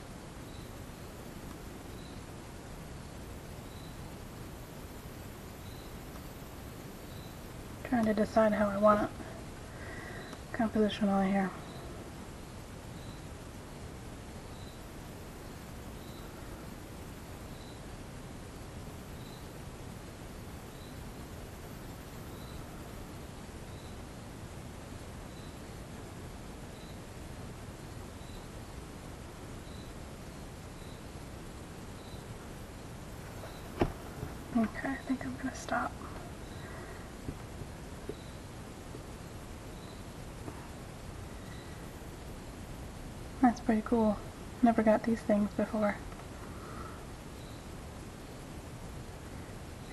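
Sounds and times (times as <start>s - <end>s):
room noise hiss: 0.0s - 49.9s
faint high chirp: 0.4s - 0.8s, 1.9s - 2.3s, 3.6s - 4.1s, 5.6s - 6.3s, 7.0s - 7.5s, 11.6s - 12.0s, 12.9s - 13.4s, 14.5s - 16.4s, 17.5s - 17.9s, 19.2s - 19.6s, 20.7s - 21.2s, 22.3s - 22.8s, 23.7s - 24.0s, 25.3s - 25.7s, 26.7s - 27.1s, 28.2s - 28.6s, 29.6s - 31.1s, 32.0s - 32.3s, 38.1s - 38.5s, 39.2s - 40.1s, 41.4s - 41.8s, 47.4s - 47.7s.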